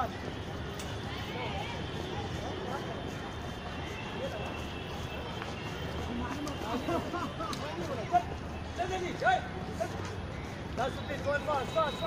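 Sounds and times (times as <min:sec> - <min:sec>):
distant people talking: 0:00.0 - 0:12.0
steady background noise: 0:00.0 - 0:12.0.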